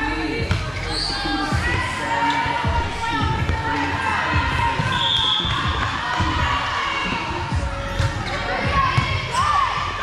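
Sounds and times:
background music: 0.0s - 10.0s
voices in a hall: 0.0s - 10.0s.

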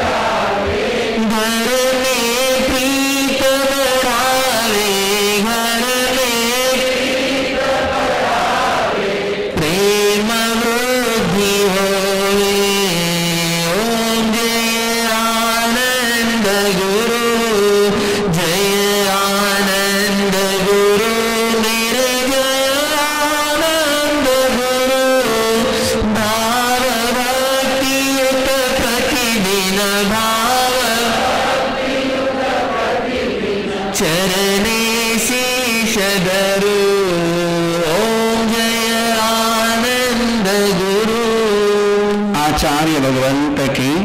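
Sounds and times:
man chanting into a microphone: 1.0s - 7.6s, 9.4s - 31.8s, 33.7s - 44.0s.

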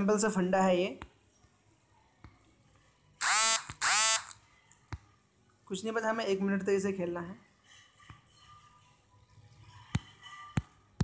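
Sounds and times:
buzzy electronic tones: 3.2s - 4.4s.

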